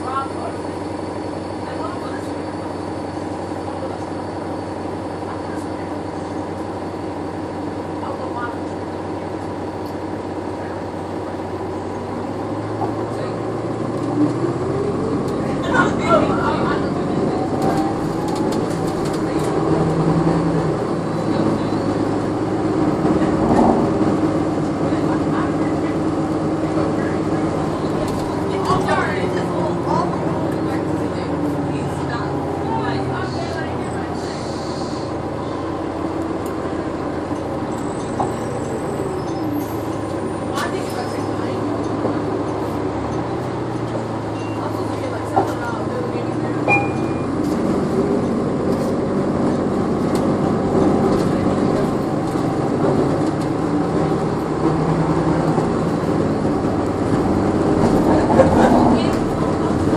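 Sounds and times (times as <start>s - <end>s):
bus engine running hum: 0.0s - 59.9s.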